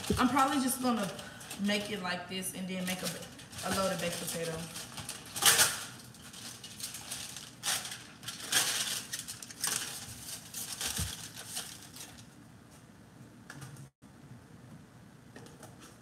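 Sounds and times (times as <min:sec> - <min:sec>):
aluminium foil crinkling: 0:00.0 - 0:12.4.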